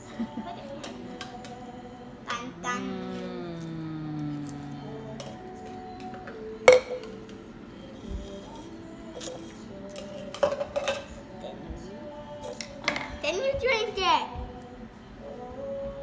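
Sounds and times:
background music with held notes: 0:00.0 - 0:16.0.

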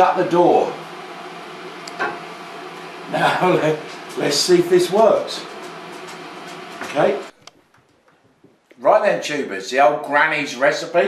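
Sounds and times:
kitchen background hum: 0:00.0 - 0:09.3.

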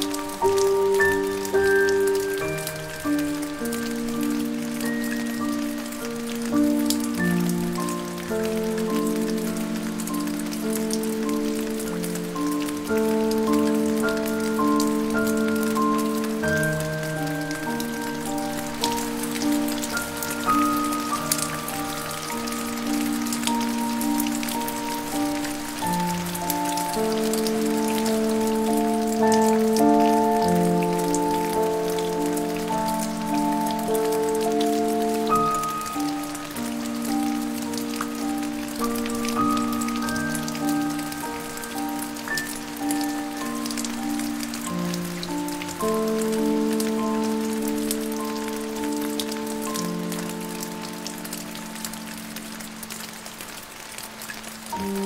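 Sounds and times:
slow soft piano music: 0:00.0 - 0:55.0
steady rain: 0:00.0 - 0:55.0.

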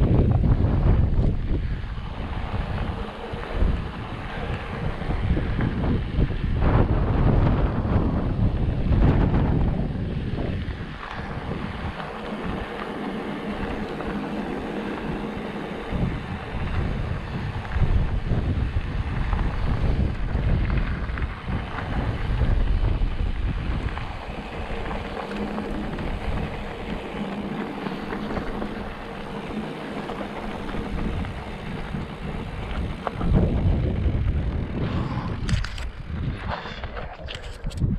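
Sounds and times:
tyres rolling on gravel road: 0:00.0 - 0:37.9
wind buffeting microphone: 0:00.0 - 0:37.9.

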